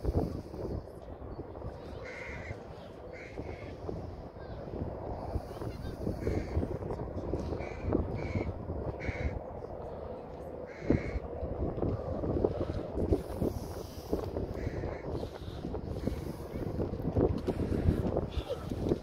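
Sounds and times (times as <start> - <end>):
low background rumble: 0.0 - 19.0.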